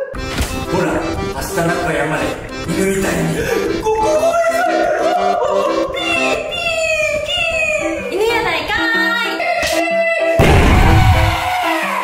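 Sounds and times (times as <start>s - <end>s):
light background music: 0.0s - 12.0s
man wailing like a dog: 3.6s - 8.0s.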